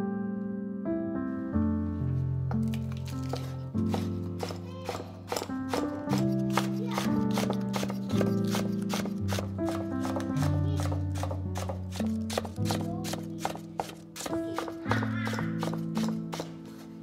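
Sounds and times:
background piano music: 0:00.0 - 0:17.0
knife chopping on wooden board: 0:02.6 - 0:17.0.

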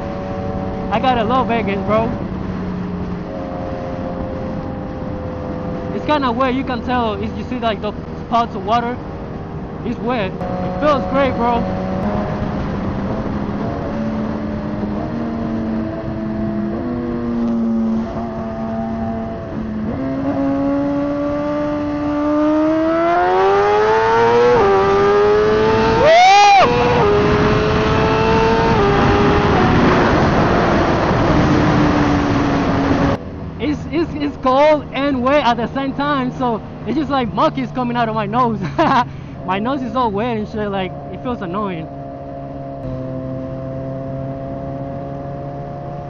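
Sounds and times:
motorcycle engine accelerating: 0:00.0 - 0:46.0.

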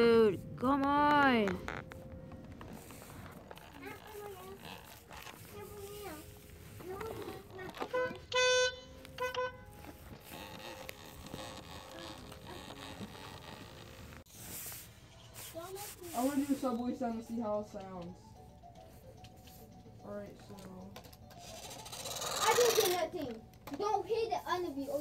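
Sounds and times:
loud horn-like beep: 0:08.0 - 0:09.7.

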